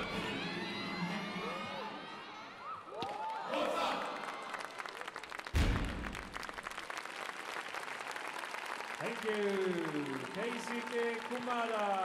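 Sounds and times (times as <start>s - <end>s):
audience applauding: 2.9s - 12.0s
deep boom: 5.6s - 6.5s.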